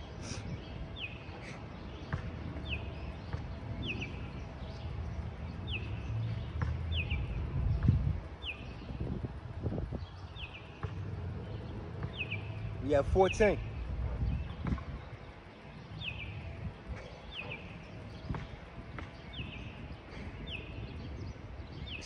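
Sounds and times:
songbird chirping: 0.0s - 22.0s.

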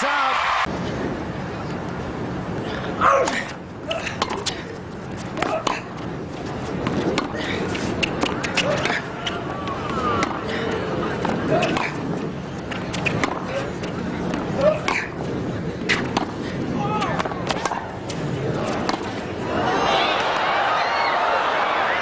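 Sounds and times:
tennis ball bouncing: 3.3s - 4.6s, 5.2s - 19.4s
tennis racket striking ball: 4.1s - 4.6s, 5.3s - 5.9s, 6.8s - 10.4s, 12.7s - 15.2s, 15.9s - 16.4s, 17.0s - 19.2s
crowd murmuring: 6.6s - 22.0s.

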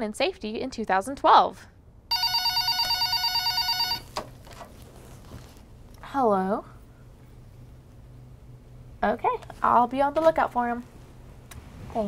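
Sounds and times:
desk telephone ringing: 2.1s - 4.2s.

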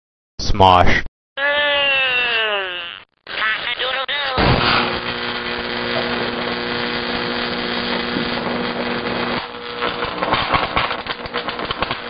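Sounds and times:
crackling and popping: 3.2s - 12.0s.

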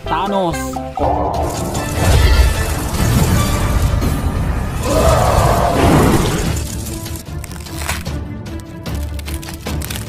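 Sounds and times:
background music with held notes: 0.0s - 4.6s.

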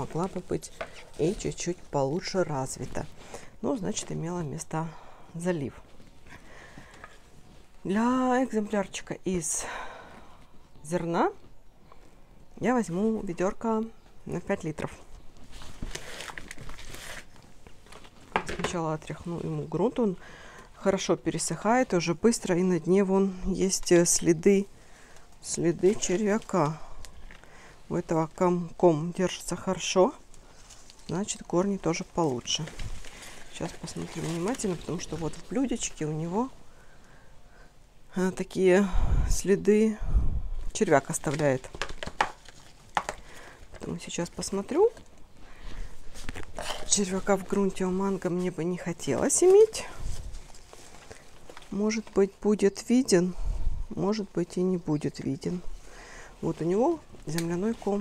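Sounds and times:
dry soil rustling: 0.0s - 9.1s, 20.8s - 37.2s, 40.7s - 58.0s.

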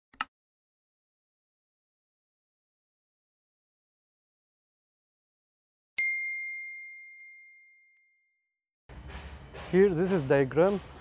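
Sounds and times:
bell ding: 6.0s - 8.4s.

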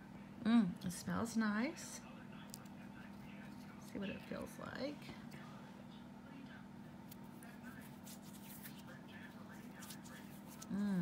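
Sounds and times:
steady low hum: 0.0s - 11.0s
fingertips rubbing skin: 7.0s - 10.8s.

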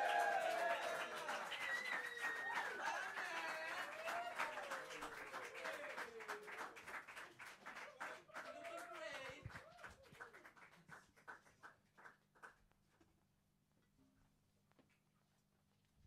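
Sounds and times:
shouts and whoops: 0.0s - 6.4s
audience clapping and cheering: 0.0s - 12.8s.

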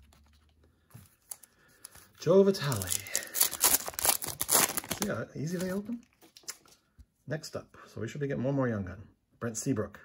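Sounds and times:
foil wrapper tearing and crinkling: 2.6s - 5.8s.

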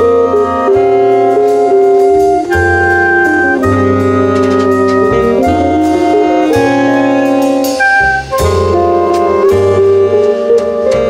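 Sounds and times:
double bass: 0.0s - 11.0s
drums with light cymbals: 0.0s - 11.0s
guitar: 0.0s - 11.0s
horns holding sustained chords: 0.0s - 11.0s.

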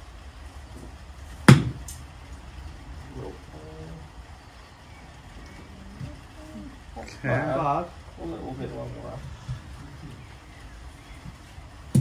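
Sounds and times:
golf club striking ball: 1.4s - 2.0s.

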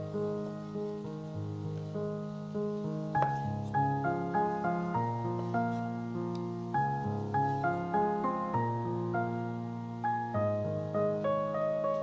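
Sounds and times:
piano notes ringing: 0.0s - 12.0s.

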